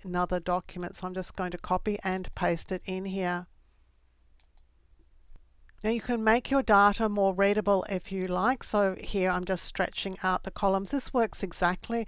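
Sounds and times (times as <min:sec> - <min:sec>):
computer mouse clicks: 0:04.3 - 0:04.7.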